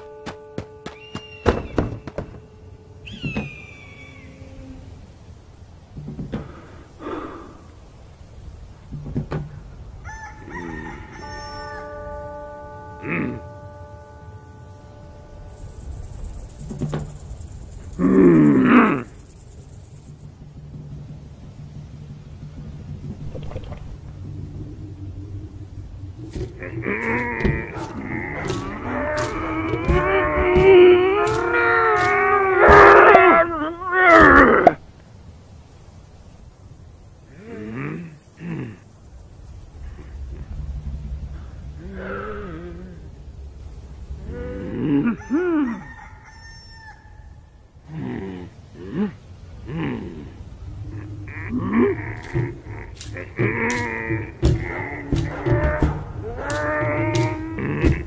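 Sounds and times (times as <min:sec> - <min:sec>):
held chord of steady tones: 0:00.0 - 0:05.7, 0:10.6 - 0:23.2
drawn-out pitched call: 0:50.8 - 0:58.0.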